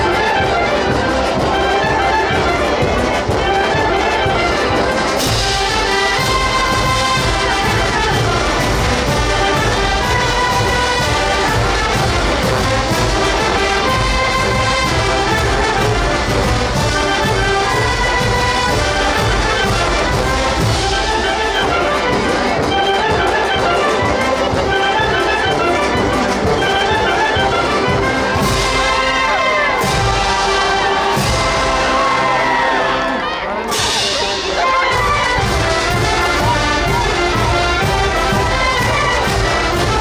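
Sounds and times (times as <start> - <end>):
brass wind band playing: 0.0 - 40.0.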